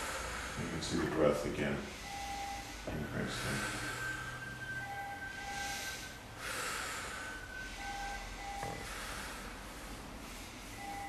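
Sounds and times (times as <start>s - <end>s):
man breathing hard and fast: 0.0s - 11.0s.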